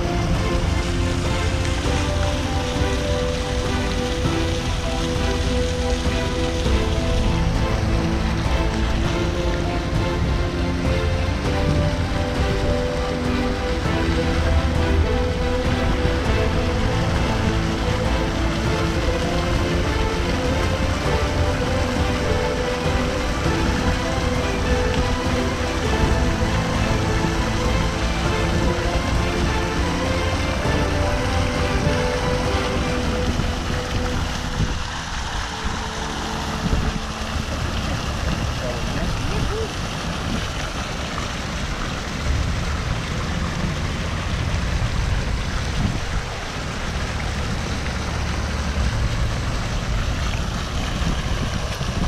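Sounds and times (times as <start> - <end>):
background music of held notes: 0.0 - 52.0
fountain water splashing: 0.0 - 52.0
low rumble: 0.0 - 52.0.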